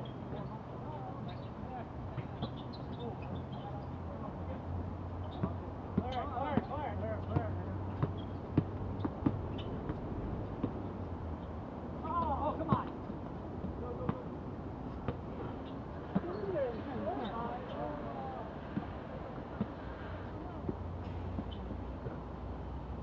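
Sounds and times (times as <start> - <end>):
basketball bouncing on hard court: 5.4 - 10.0.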